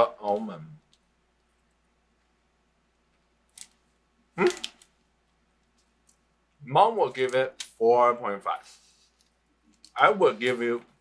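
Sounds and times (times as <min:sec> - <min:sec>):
person saying hmm: 0:04.4 - 0:04.7.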